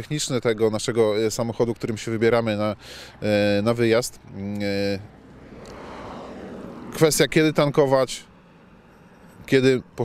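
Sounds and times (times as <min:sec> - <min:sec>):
distant passing vehicle: 0:02.0 - 0:10.0.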